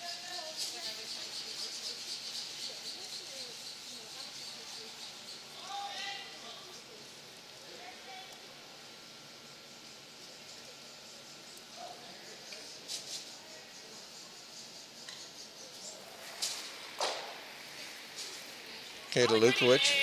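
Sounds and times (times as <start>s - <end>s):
faint distant voices: 0.0s - 20.0s.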